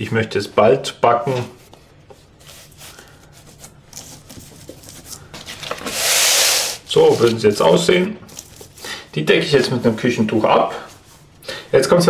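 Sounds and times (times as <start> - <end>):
hands rubbing dough: 0.1 - 12.0
baking sheet scraping on wood: 3.5 - 7.8.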